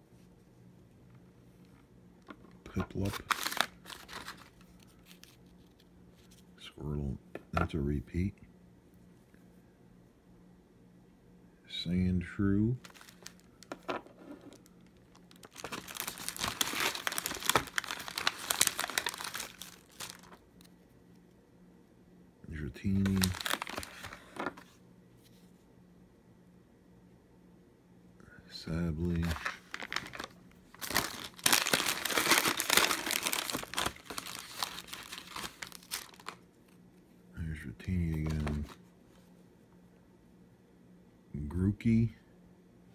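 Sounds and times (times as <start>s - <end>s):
plastic packaging crinkling: 2.7s - 6.4s, 12.8s - 20.7s, 22.9s - 24.6s, 29.0s - 36.4s, 38.2s - 38.8s.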